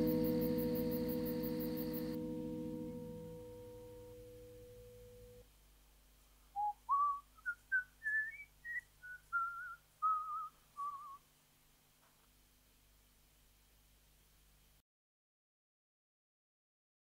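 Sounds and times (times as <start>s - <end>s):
sustained chord: 0.0s - 5.4s
person whistling tune: 6.6s - 11.2s.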